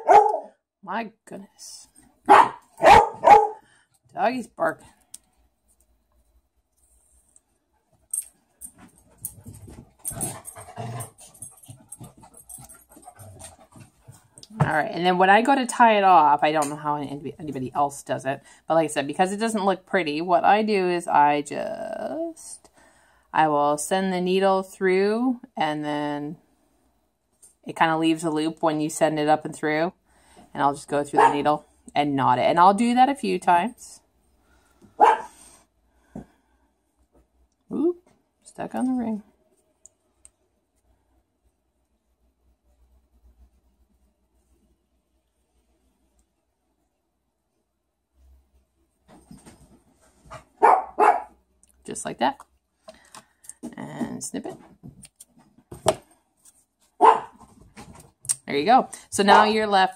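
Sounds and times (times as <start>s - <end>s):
dog barking: 0.0s - 0.6s, 2.3s - 3.6s, 31.2s - 31.4s, 35.0s - 35.4s, 50.6s - 51.4s, 57.0s - 57.4s.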